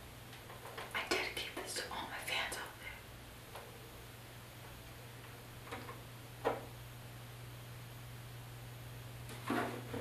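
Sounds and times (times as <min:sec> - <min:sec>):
woman whispering: 0:00.9 - 0:03.1.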